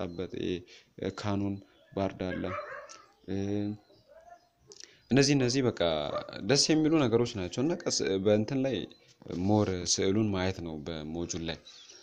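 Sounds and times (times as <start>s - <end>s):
man lecturing: 0.0s - 3.9s, 4.8s - 11.7s.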